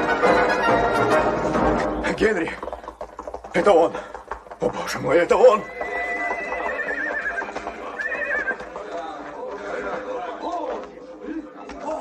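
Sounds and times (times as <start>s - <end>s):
hooves shuffling: 0.0s - 12.0s
horses whinnying: 2.1s - 8.9s.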